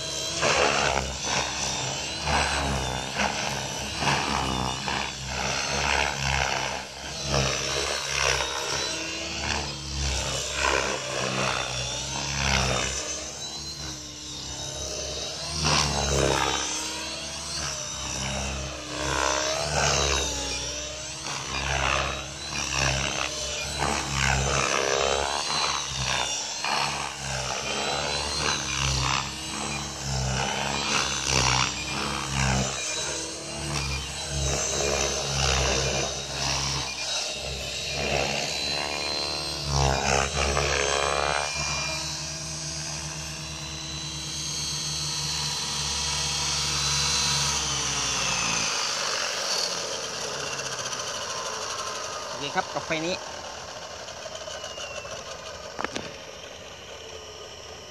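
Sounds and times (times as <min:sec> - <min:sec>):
rc helicopter motor whining: 0:00.0 - 0:57.9.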